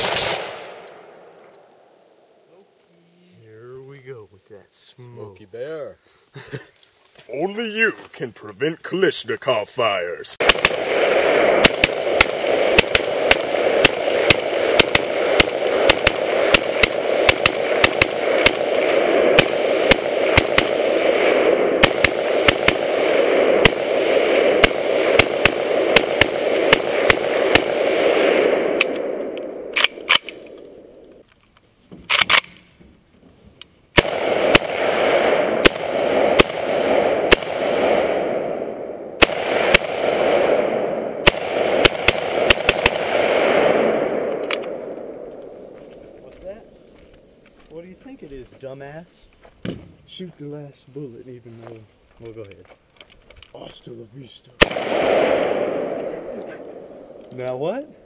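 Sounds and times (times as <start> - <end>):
rifle shots: 0.0 - 1.6, 10.4 - 31.2, 32.1 - 32.6, 33.9 - 47.4, 54.6 - 58.0.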